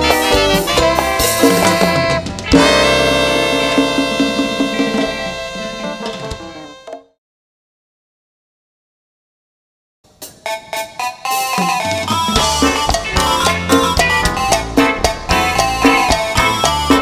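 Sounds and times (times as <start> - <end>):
live band chord ringing: 0.0 - 7.1, 10.8 - 17.0.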